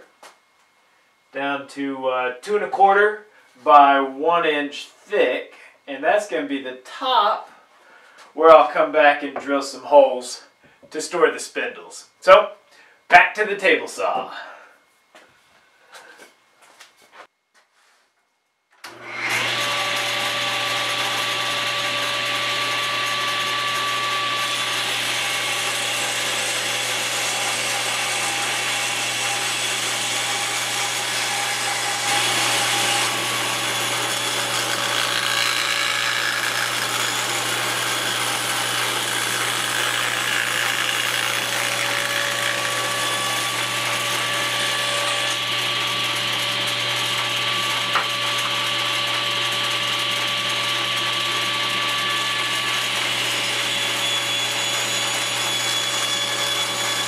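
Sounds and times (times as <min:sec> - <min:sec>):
table saw ripping wood: 0:18.9 - 0:57.0.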